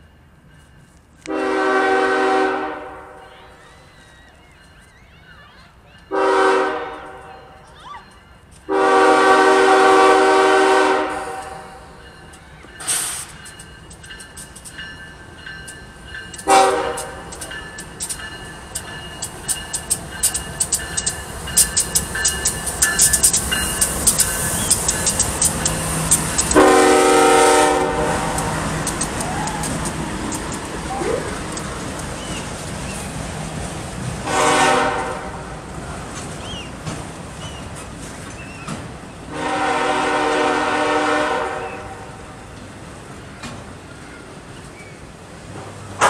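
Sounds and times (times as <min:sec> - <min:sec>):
train rumble: 0:00.0 - 0:46.0
locomotive air horn: 0:01.2 - 0:03.6, 0:06.1 - 0:07.6, 0:08.7 - 0:12.0, 0:16.4 - 0:17.3, 0:26.4 - 0:29.9, 0:34.2 - 0:35.5, 0:39.3 - 0:42.2
train wheels clattering: 0:08.1 - 0:35.3.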